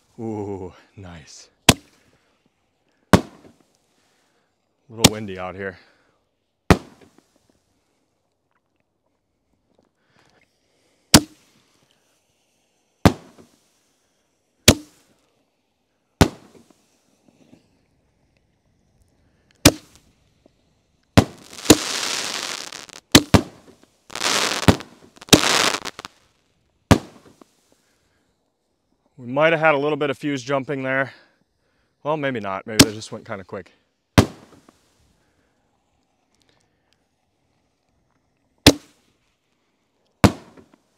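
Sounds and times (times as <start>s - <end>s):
firework shells banging: 16.2s - 16.7s, 21.2s - 26.1s, 26.9s - 27.4s.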